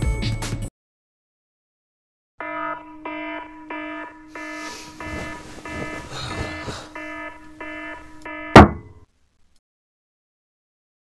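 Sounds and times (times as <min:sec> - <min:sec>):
digital alarm clock beeping: 0:02.5 - 0:09.0
rustling: 0:04.5 - 0:07.5.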